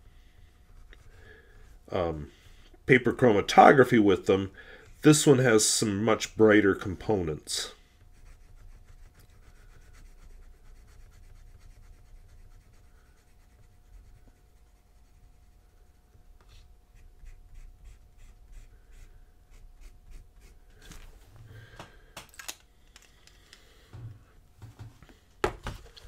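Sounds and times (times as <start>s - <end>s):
fountain pen scratching on paper: 8.2s - 16.0s.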